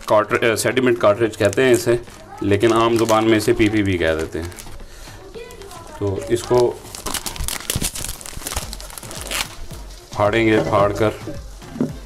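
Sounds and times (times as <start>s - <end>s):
plastic wrapping crinkling and tearing: 0.0s - 11.1s.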